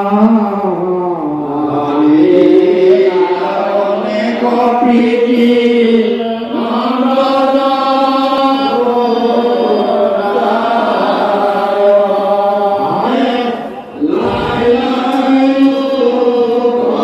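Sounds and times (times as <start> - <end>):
men chanting together: 1.4 - 17.0.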